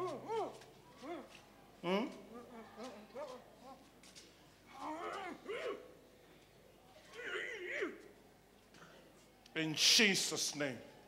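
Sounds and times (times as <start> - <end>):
person crying wordlessly: 0.0 - 3.8, 4.7 - 5.9.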